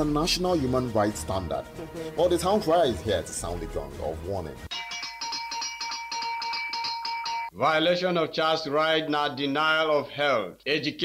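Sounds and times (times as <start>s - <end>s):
bell rung rapidly: 4.7s - 7.6s.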